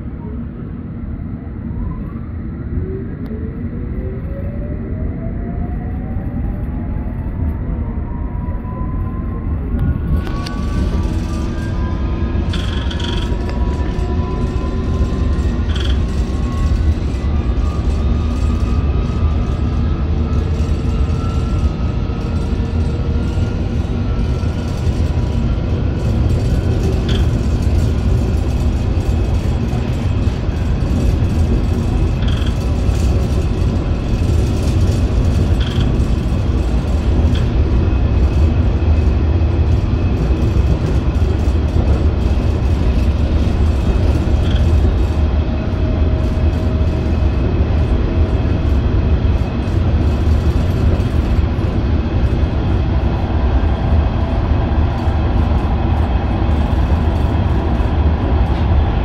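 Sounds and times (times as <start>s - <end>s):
wheels rumbling on rail: 0.0s - 59.0s
train traction motor whine: 0.9s - 59.0s.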